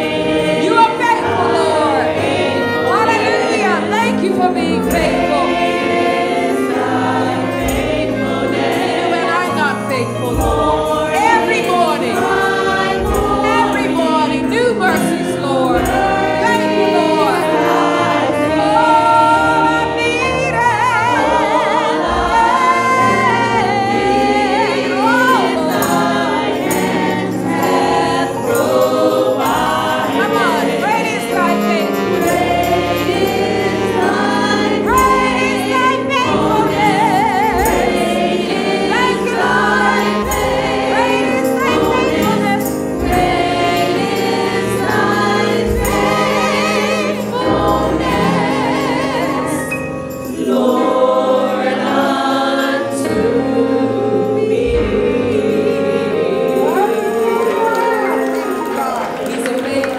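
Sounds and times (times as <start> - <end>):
choir singing gospel song: 0.0 - 59.9
woman singing lead with vibrato: 0.0 - 59.9.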